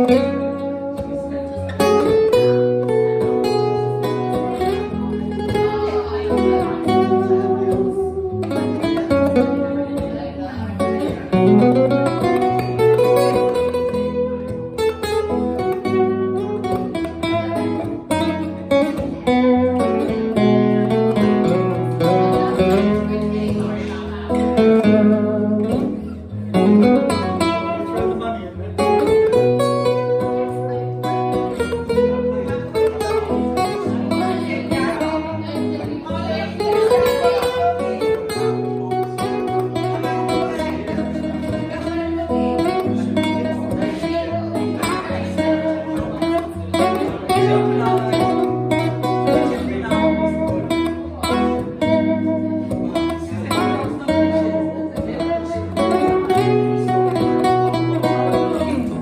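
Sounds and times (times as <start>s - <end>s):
acoustic guitar plucked notes: 0.0s - 59.0s.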